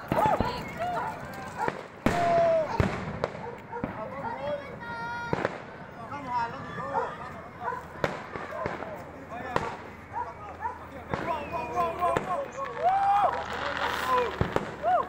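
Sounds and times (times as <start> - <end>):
distant fireworks bangs: 0.0 - 6.0, 7.9 - 15.0
crowd shouting and chatter: 0.0 - 15.0
firework whistling: 8.0 - 15.0.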